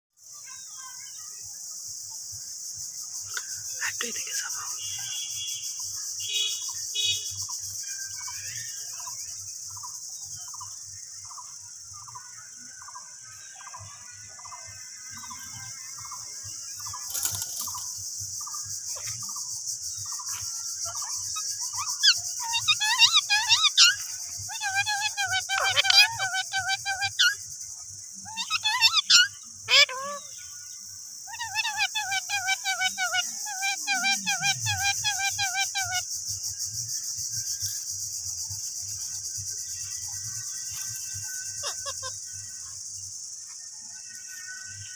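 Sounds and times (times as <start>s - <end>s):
high insect buzz: 0.2s - 44.9s
parakeets chattering calls: 13.5s - 27.4s, 28.3s - 36.1s, 39.7s - 42.8s
faint bird call: 40.6s - 42.4s.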